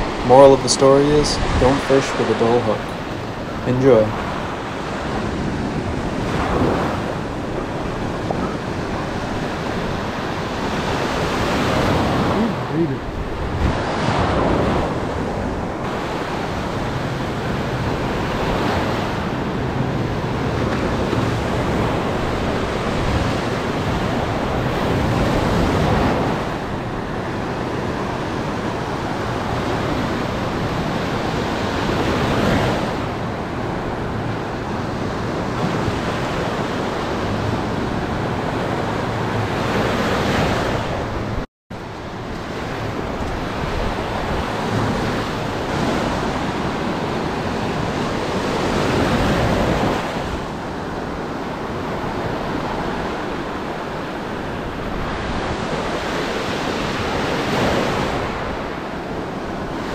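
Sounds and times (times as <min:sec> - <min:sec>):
surf breaking on beach: 0:00.0 - 0:41.2
wind buffeting microphone: 0:00.0 - 0:59.9.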